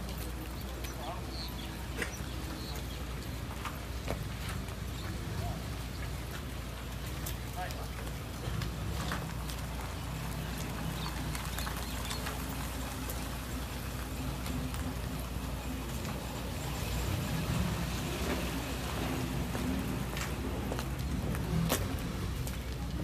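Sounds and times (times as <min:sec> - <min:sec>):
car engine running: 0:00.0 - 0:23.0.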